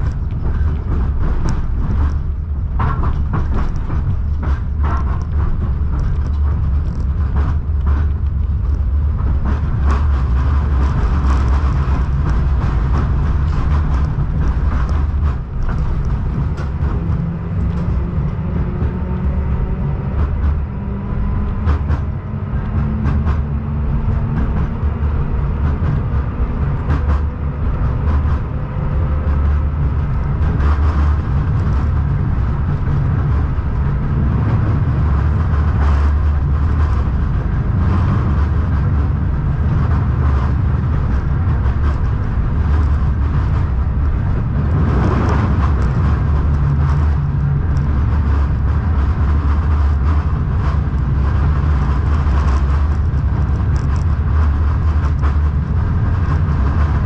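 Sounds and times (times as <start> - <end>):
tram rumbling along track: 0.0 - 57.0.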